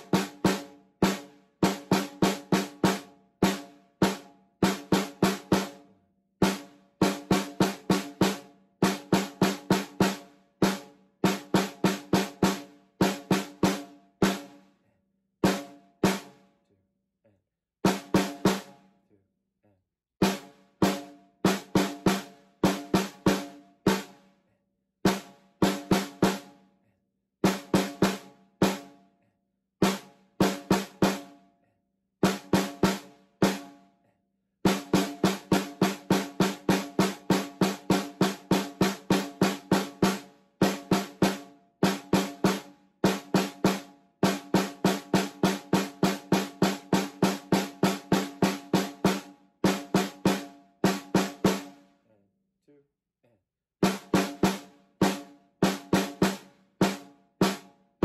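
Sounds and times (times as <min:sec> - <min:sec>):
snare drum solo: 0:00.0 - 0:05.8, 0:06.4 - 0:14.6, 0:15.4 - 0:16.4, 0:17.8 - 0:18.8, 0:20.2 - 0:24.2, 0:25.1 - 0:26.6, 0:27.4 - 0:29.0, 0:29.8 - 0:31.4, 0:32.2 - 0:33.8, 0:34.6 - 0:51.8, 0:53.8 - 0:57.8.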